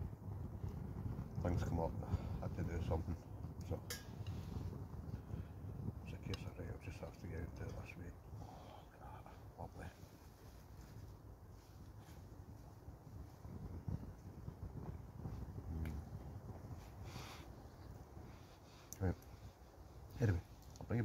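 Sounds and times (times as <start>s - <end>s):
low steady rumble: 0.0s - 21.0s
man murmuring: 20.2s - 20.4s.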